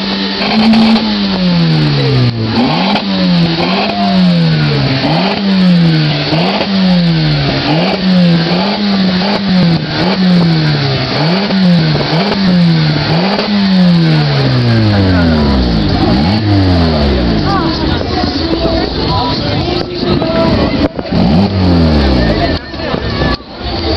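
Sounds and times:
car engine revving: 0.0 - 23.9.

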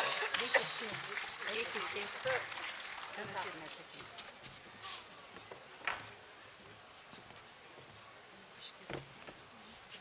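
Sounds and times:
low stage background noise: 0.0 - 10.0.

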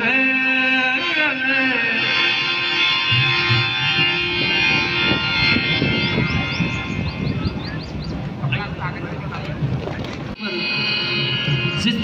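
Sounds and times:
held instrumental notes: 0.1 - 8.8, 10.3 - 12.0.

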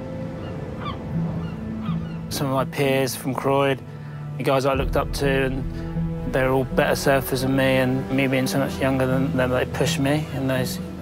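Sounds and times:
soft background music: 0.0 - 11.0
gull cries: 0.3 - 2.4.

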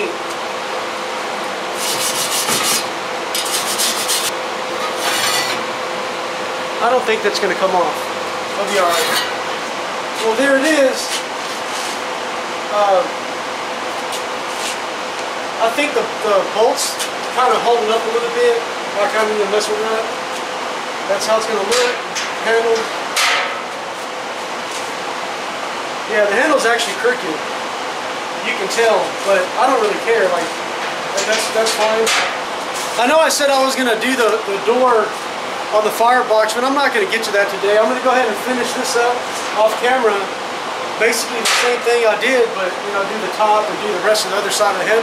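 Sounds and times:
steady background hiss: 0.0 - 45.0
steady hum: 0.0 - 45.0.

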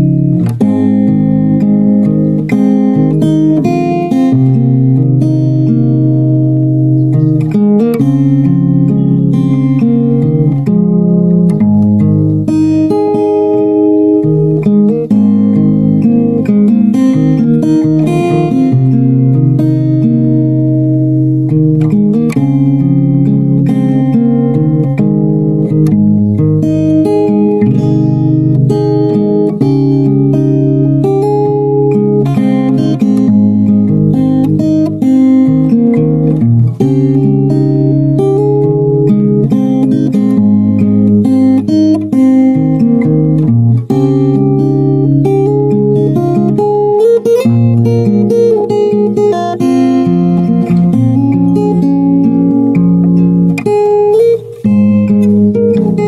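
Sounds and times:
fingerstyle acoustic guitar: 0.0 - 56.0.

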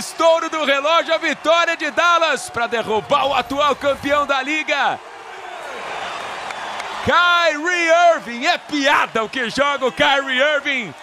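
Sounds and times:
crowd clapping: 0.0 - 11.0
crowd voices: 0.0 - 11.0.

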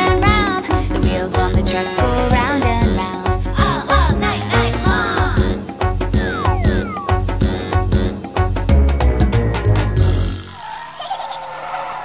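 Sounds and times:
music: 0.0 - 10.6.

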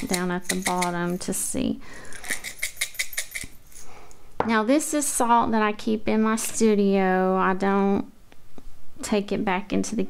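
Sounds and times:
salt rattling from bottle: 0.0 - 1.3, 2.1 - 3.9.

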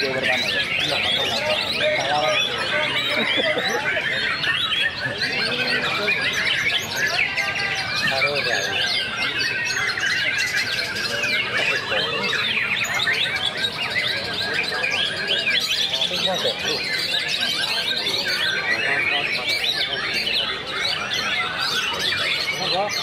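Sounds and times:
birds singing: 0.0 - 23.0.

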